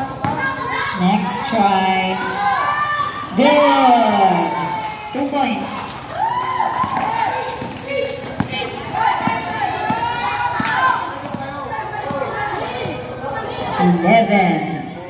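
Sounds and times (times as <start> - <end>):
children shouting: 0.0 - 1.0, 2.1 - 5.2, 6.0 - 14.0
basketball bouncing on concrete: 6.8 - 13.0.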